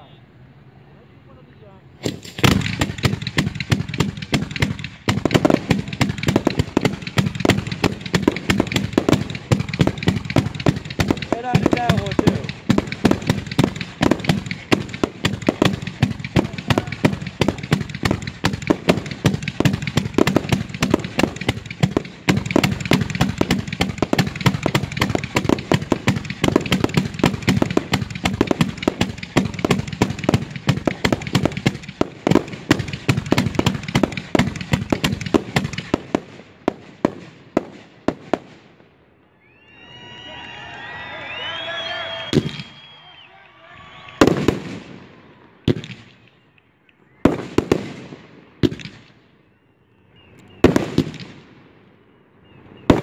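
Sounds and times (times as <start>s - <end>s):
fireworks launches and bursts: 2.0s - 38.9s, 41.3s - 46.3s, 47.2s - 49.3s, 50.6s - 51.8s.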